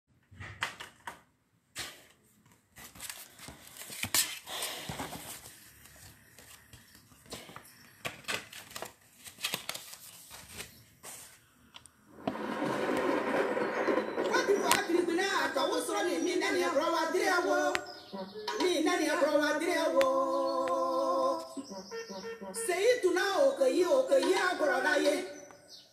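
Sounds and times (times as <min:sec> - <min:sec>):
voices: 0:14.2 - 0:25.5.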